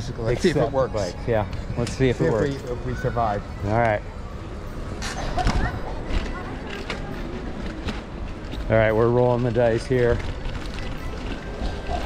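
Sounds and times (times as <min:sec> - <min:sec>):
bicycles rolling over cobblestones: 0:00.0 - 0:12.0
wind and road noise rumble: 0:00.0 - 0:12.0.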